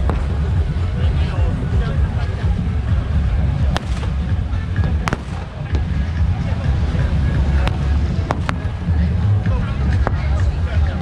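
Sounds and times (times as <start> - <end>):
low rumble: 0.0 - 11.0
firecracker bangs: 3.7 - 6.4, 7.6 - 8.7.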